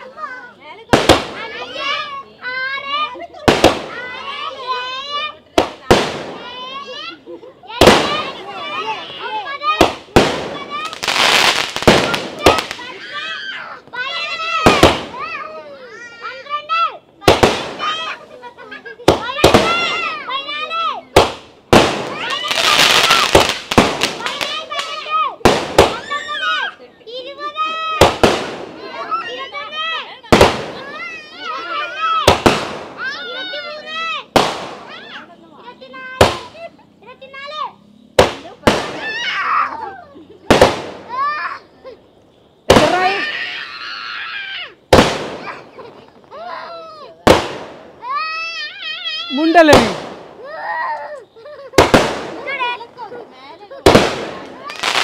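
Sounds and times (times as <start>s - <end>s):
voices calling out: 0.0s - 55.0s
firework bangs: 0.1s - 36.7s, 37.3s - 50.7s, 51.4s - 55.0s.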